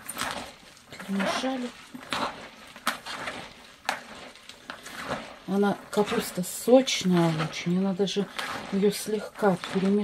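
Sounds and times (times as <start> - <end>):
hands kneading wet cabbage: 0.0 - 10.0
sharp crackles: 0.0 - 10.0.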